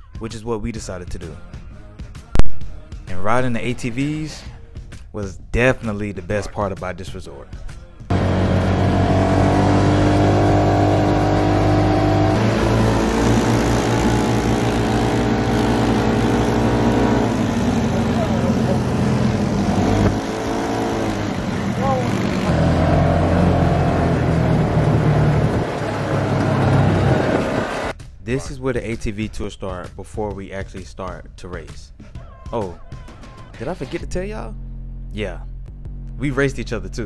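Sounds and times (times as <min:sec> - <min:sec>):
off-road vehicle engines droning: 0:08.1 - 0:27.9.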